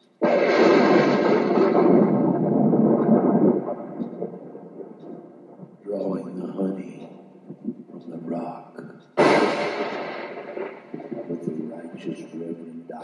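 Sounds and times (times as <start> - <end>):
thunder clap and rumble: 0.0 - 8.2, 9.2 - 12.6.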